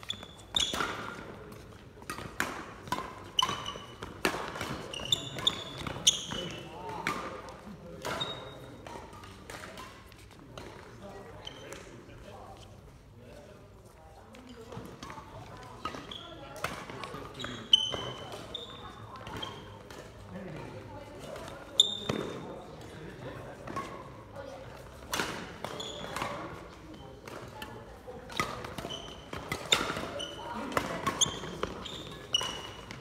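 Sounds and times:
racket hitting shuttlecock: 0.0s - 10.8s, 14.7s - 20.2s, 21.2s - 22.5s, 24.8s - 33.0s
court shoes squeaking: 0.0s - 13.6s, 14.3s - 33.0s.

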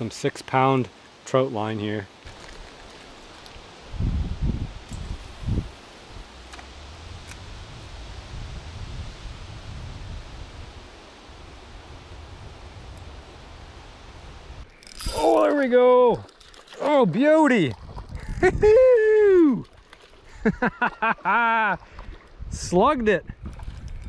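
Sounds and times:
wind rumbling on microphone: 3.5s - 15.4s, 17.7s - 20.5s, 22.0s - 24.0s
low gusts or bumps: 3.9s - 14.6s.

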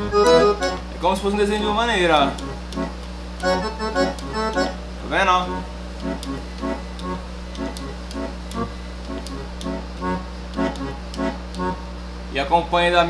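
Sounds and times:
accordion melody: 0.0s - 0.9s, 1.5s - 11.8s
accordion bass and chords: 0.0s - 12.0s.

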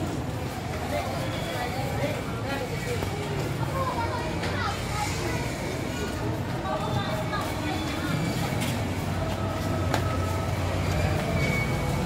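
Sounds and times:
shoppers chattering: 0.0s - 12.0s.

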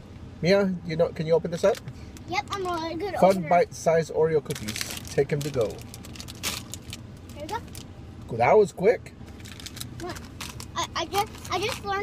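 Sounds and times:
plastic snack bag crinkling: 4.5s - 7.8s, 9.4s - 11.9s.

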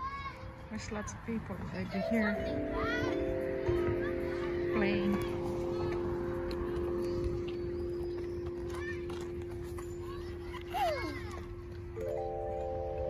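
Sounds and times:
chime tubes struck with mallet: 1.9s - 13.0s
low ringing chime note: 1.9s - 13.0s.

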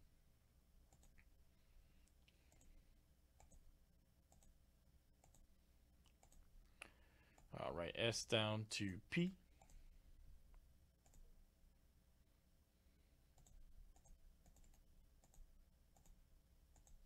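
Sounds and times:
computer mouse clicks: 0.9s - 1.3s, 2.0s - 2.8s, 3.4s - 3.7s, 4.3s - 4.6s, 5.2s - 7.5s, 9.6s - 9.8s, 11.0s - 11.3s, 13.4s - 17.0s
man talking: 7.5s - 9.5s.

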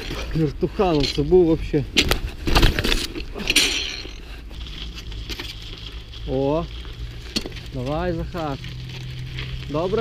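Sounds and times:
bicycle rattling: 0.0s - 10.0s
tyres skidding on snow: 0.0s - 10.0s.

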